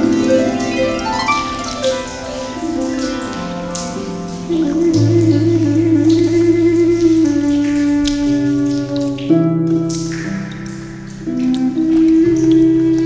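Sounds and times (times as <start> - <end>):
harp playing: 0.0 - 7.0
rain-like patter: 0.0 - 13.0.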